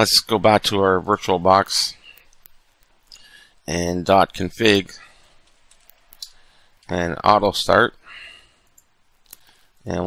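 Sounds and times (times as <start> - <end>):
soft breathy noise: 3.0 - 3.7, 4.9 - 5.7, 6.3 - 6.9, 8.0 - 9.9.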